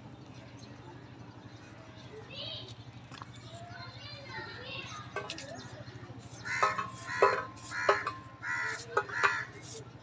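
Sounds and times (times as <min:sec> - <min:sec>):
crow cawing: 0:06.4 - 0:09.6
apple pieces tapping on steel plate: 0:06.6 - 0:08.2.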